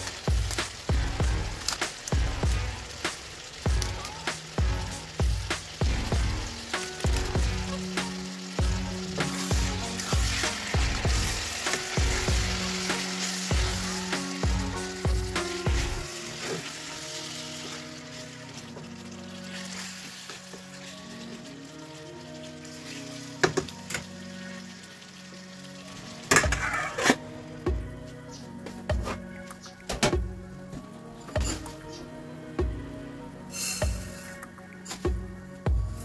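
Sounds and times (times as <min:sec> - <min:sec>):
wooden spoon stirring in pan: 0:00.0 - 0:23.7
background music with beat: 0:00.0 - 0:36.0
chicken and onions sizzling: 0:00.0 - 0:36.0.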